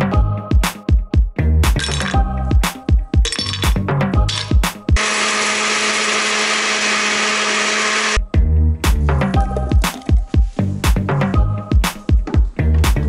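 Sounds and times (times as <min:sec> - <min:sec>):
blender running: 0:05.0 - 0:08.2.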